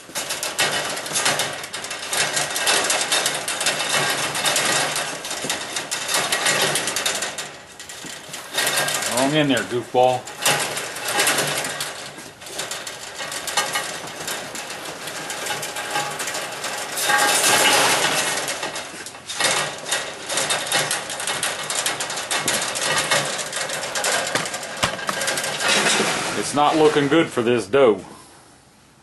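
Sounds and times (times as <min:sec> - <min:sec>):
rabbit claws scratching on wire: 0:00.0 - 0:27.4
rabbits scuffling: 0:00.0 - 0:28.0.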